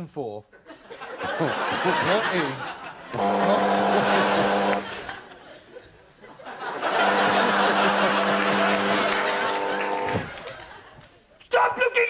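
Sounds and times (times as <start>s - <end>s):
faint audience laughter: 0.6s - 11.0s
steady buzz: 3.0s - 5.3s, 6.8s - 10.4s.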